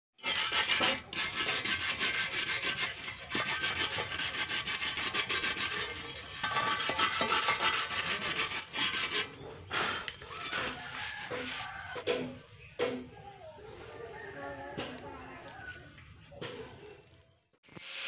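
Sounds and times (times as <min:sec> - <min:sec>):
wire brush scrubbing metal: 0:00.2 - 0:12.4.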